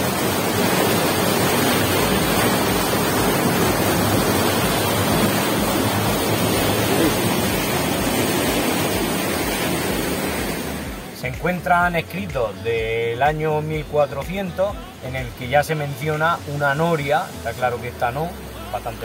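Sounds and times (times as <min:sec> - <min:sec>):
water rushing through channel: 0:00.0 - 0:19.0.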